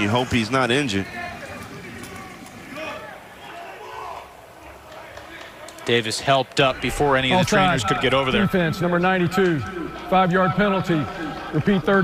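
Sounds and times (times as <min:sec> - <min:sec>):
open-air stadium ambience: 0:00.0 - 0:12.0.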